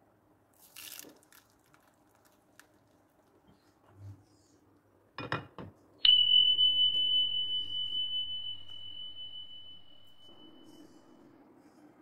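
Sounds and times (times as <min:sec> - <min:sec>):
high bell-like ding: 0:06.0 - 0:11.3.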